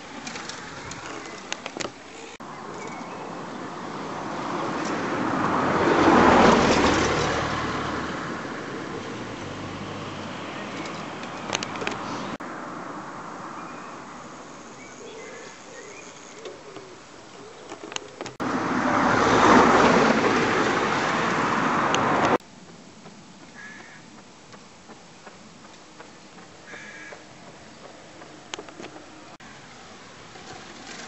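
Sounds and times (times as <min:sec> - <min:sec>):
car passing close by: 0:03.3 - 0:11.2, 0:18.4 - 0:22.4
faint bird calls: 0:23.4 - 0:24.2, 0:26.0 - 0:27.9.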